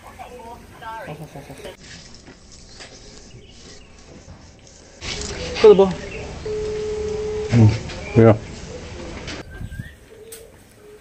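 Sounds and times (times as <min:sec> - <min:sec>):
bird cooing: 0:05.0 - 0:11.0.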